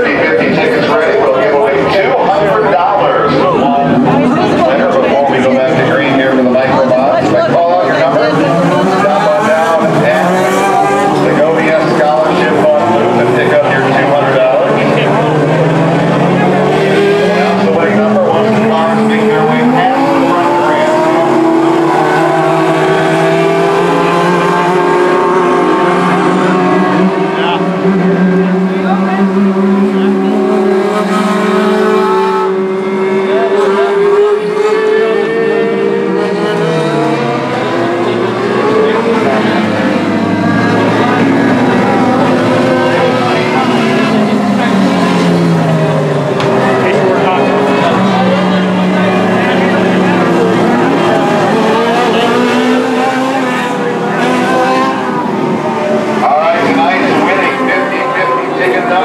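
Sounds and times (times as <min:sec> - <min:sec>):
race car engines: 0:00.0 - 0:59.0.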